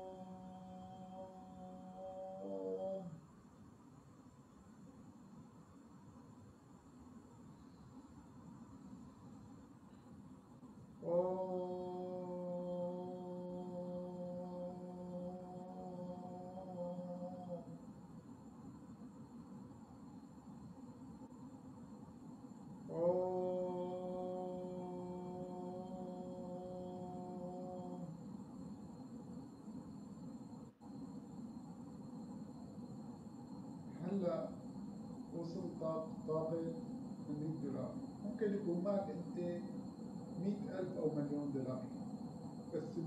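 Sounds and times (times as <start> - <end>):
low chant-like drone: 0.0 - 3.3, 10.8 - 19.4, 22.4 - 43.0
thin high whine: 0.0 - 43.0.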